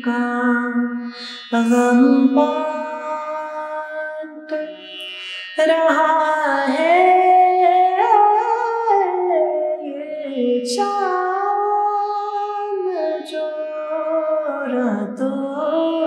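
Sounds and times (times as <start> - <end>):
woman singing: 0.0 - 4.9, 5.6 - 16.0.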